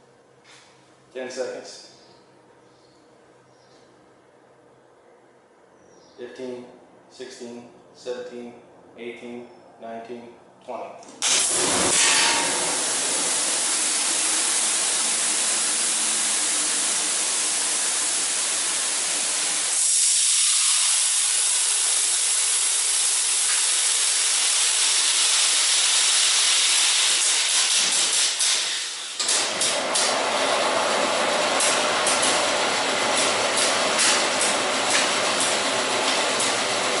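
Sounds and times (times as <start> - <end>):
fire suppression agent hissing: 11.6 - 27.3.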